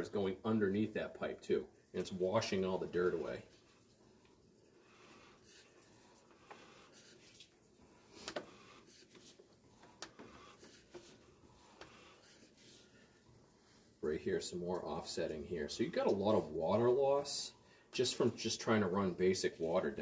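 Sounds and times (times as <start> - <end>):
faint clicks and rubs: 5.1 - 13.9.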